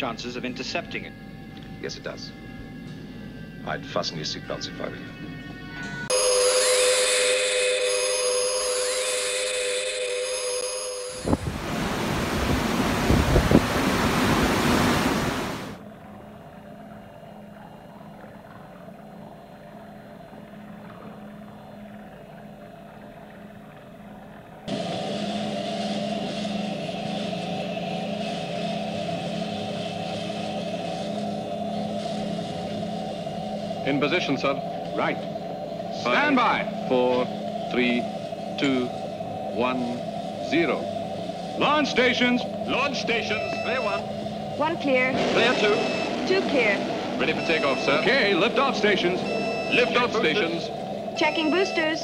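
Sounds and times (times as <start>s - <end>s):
low steady hum: 0.0s - 52.0s
mechanical hum with held tones: 0.0s - 52.0s
electronic music sting: 5.8s - 11.4s, 24.7s - 51.7s
loud rushing roar: 8.6s - 15.8s, 24.7s - 51.8s.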